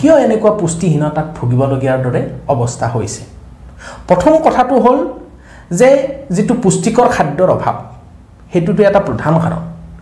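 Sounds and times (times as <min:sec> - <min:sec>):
man speaking: 0:00.0 - 0:09.8
quick breath in: 0:03.7 - 0:04.1.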